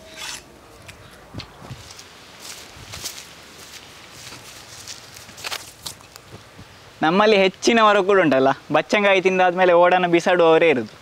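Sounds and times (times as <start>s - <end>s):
watermelon rind scraping steel plate: 0.0s - 0.5s.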